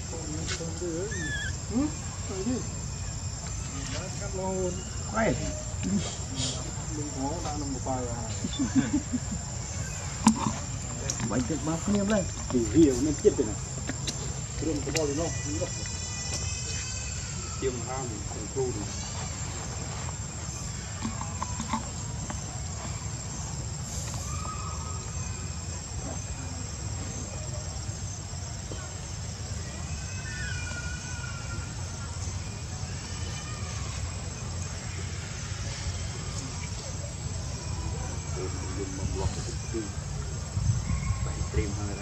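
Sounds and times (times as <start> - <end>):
faint voices: 0.0 - 42.0
short faint calls: 0.4 - 7.4.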